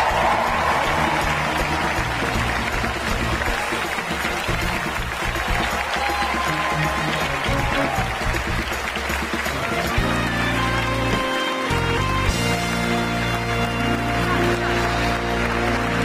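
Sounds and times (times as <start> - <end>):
audience applause: 0.0 - 16.0
walk-on music: 0.0 - 16.0.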